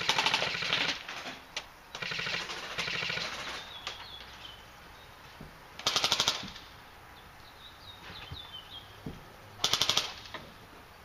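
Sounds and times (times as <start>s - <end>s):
airsoft gun automatic bursts: 0.0s - 1.3s, 1.9s - 3.8s, 5.8s - 6.7s, 9.6s - 10.3s.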